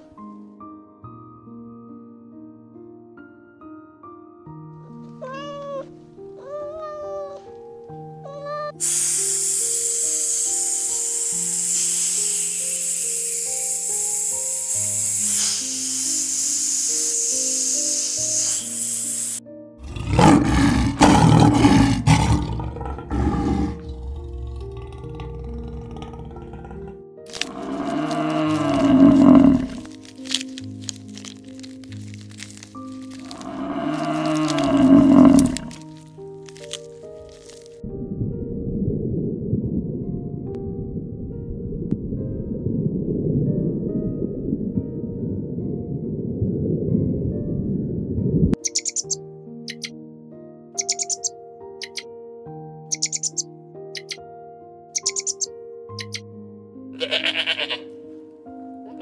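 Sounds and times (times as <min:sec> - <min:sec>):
soft piano music: 0:00.0 - 0:59.0
kitten meowing: 0:05.2 - 0:07.4, 0:08.2 - 0:08.8
steady hiss: 0:08.8 - 0:19.4
deep animal calls: 0:19.8 - 0:29.9, 0:33.1 - 0:35.9
lion growling: 0:19.8 - 0:29.9, 0:33.1 - 0:35.9.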